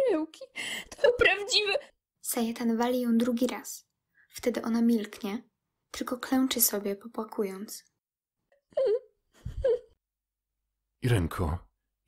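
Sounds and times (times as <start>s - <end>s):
woman whimpering: 8.7s - 10.0s.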